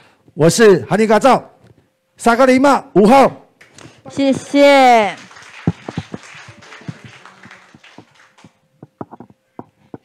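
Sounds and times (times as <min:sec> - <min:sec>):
audience clapping: 0:03.6 - 0:09.0.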